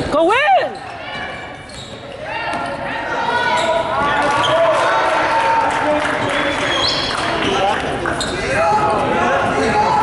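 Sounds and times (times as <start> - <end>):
voices of spectators and players: 0.0 - 10.0.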